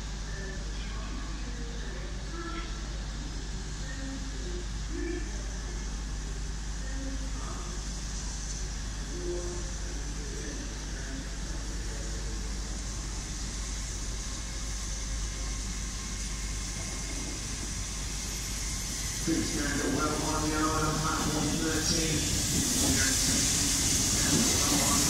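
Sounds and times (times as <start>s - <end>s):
low hum and rumble: 0.0s - 25.0s
distant voices: 18.3s - 25.0s.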